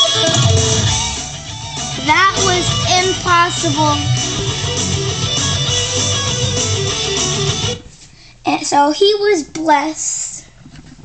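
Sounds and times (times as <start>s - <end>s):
fast electric guitar lead: 0.0s - 7.8s.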